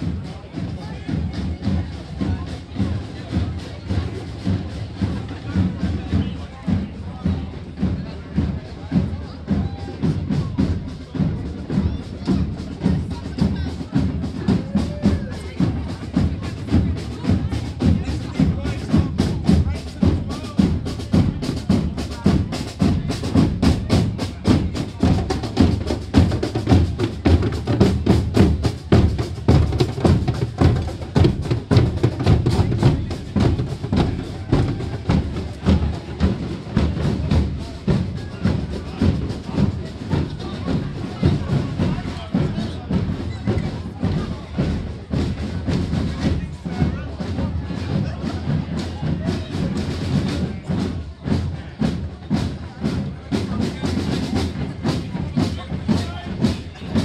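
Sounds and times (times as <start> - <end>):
crowd voices: 0.0 - 57.0
drums playing a driving beat: 0.0 - 57.0.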